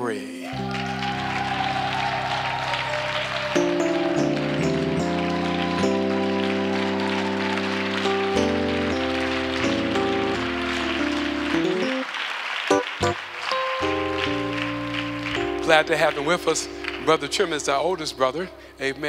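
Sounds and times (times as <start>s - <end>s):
congregation applause: 0.4s - 19.0s
organ playing chords: 0.5s - 19.0s.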